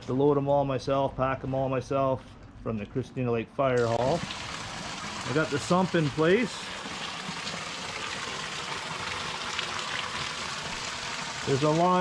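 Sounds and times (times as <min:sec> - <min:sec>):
sump pump running: 0:03.8 - 0:12.0
water rushing: 0:03.8 - 0:12.0.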